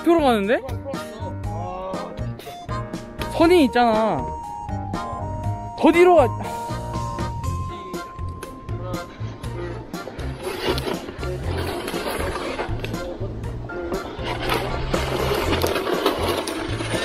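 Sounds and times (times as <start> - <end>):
music with steady bass beat: 0.1 - 11.7
sled runners scraping ice: 9.6 - 17.0.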